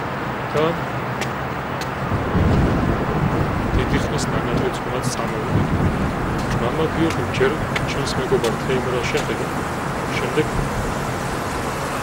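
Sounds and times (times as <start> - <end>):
noisy low rumble: 2.0 - 10.7.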